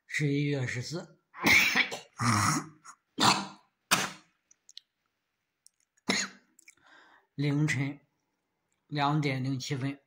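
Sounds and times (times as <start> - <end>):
person coughing: 1.4 - 4.3, 6.1 - 6.5.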